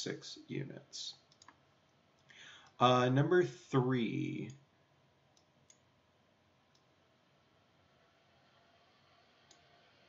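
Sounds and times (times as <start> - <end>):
faint clicks: 1.2 - 2.8.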